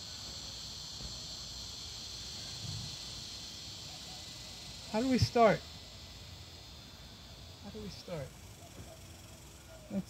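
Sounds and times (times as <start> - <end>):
insects droning: 0.0 - 10.0.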